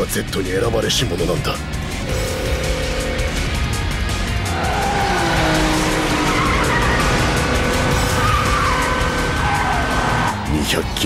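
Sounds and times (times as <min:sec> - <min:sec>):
background music: 0:00.0 - 0:11.0
sports car engine revving: 0:01.7 - 0:11.0
tyres squealing: 0:04.4 - 0:11.0.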